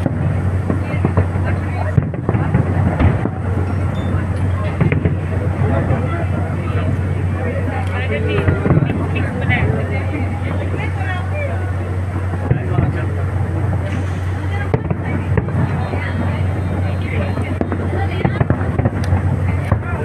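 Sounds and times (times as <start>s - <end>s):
fireworks bangs and crackles: 0.0s - 20.0s
people talking: 0.0s - 20.0s
steady low hum: 0.0s - 20.0s.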